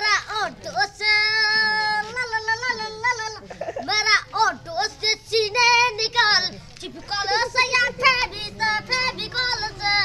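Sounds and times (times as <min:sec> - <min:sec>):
boy singing: 0:00.0 - 0:10.0.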